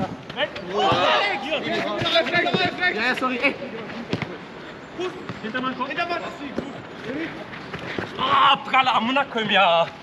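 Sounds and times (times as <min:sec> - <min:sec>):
players calling out: 0:00.4 - 0:05.4.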